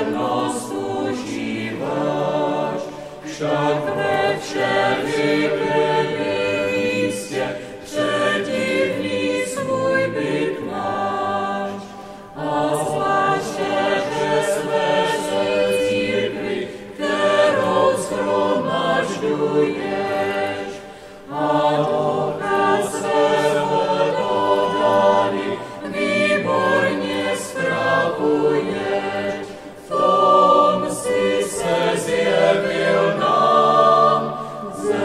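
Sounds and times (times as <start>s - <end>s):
choir singing a hymn: 0.0s - 35.0s.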